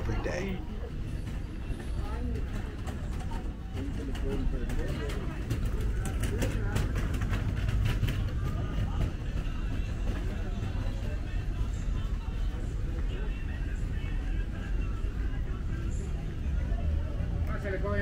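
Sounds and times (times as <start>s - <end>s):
indistinct voices of passers-by: 0.0s - 18.0s.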